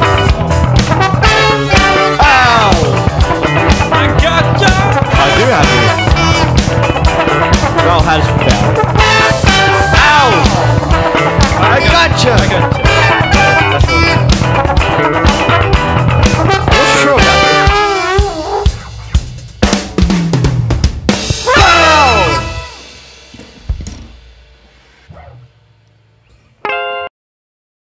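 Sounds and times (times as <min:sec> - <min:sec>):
saxophone: 0:00.0 - 0:19.0
trombone sliding pitch lines: 0:00.0 - 0:19.3, 0:21.4 - 0:23.0
funk band playing: 0:00.0 - 0:24.8
drum kit: 0:00.0 - 0:25.4
electric bass: 0:00.0 - 0:26.6.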